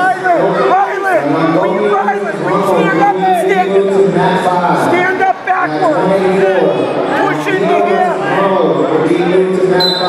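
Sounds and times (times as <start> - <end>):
spectators chattering: 0.0 - 10.0.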